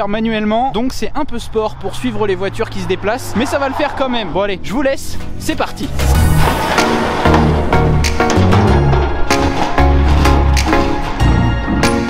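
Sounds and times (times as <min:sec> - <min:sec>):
background music with bass: 0:04.2 - 0:12.0
drum hits: 0:05.9 - 0:10.8.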